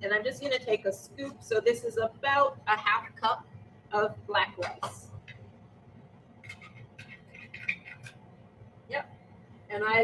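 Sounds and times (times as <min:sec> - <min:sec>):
low steady hum: 0:00.0 - 0:10.0
serving spoon scraping plate: 0:06.4 - 0:08.2.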